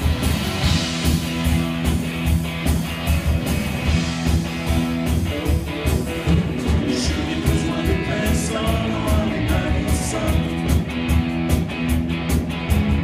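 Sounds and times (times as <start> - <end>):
bass guitar: 0.0 - 13.0
drum kit beat: 0.0 - 13.0
electric guitars: 0.0 - 13.0.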